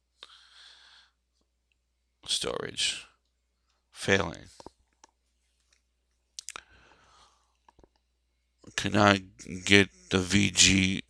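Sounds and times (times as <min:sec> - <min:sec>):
soft breath: 0:00.2 - 0:01.2, 0:06.6 - 0:07.7
man speaking: 0:02.2 - 0:03.1, 0:04.0 - 0:04.6, 0:08.7 - 0:11.0.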